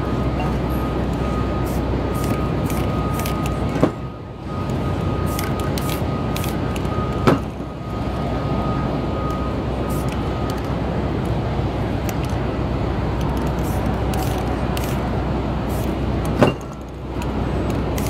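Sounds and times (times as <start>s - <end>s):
city street din: 0.0s - 18.0s
spray-paint can hissing: 13.5s - 15.0s, 15.7s - 16.0s.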